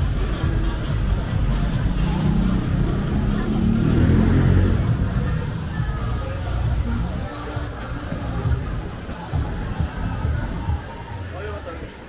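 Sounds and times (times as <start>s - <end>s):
city street hubbub: 0.0s - 12.0s.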